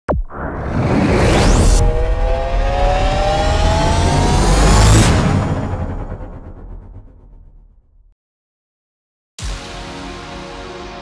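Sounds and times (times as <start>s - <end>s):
car engine revving: 1.6s - 6.4s.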